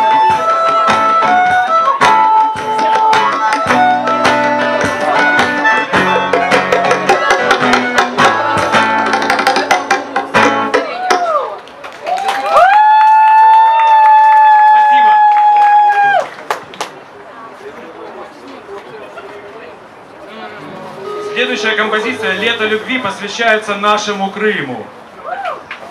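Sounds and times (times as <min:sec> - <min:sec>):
acoustic reggae band: 0:00.0 - 0:11.8, 0:12.8 - 0:24.2.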